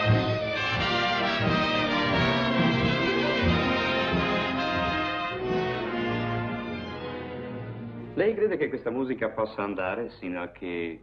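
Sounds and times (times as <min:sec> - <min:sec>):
orchestral brass chords: 0:00.0 - 0:08.2.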